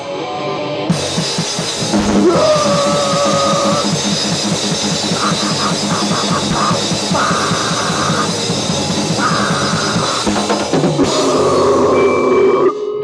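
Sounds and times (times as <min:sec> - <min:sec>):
distorted instruments: 0:00.0 - 0:13.0
drum kit playing fast: 0:00.9 - 0:12.2.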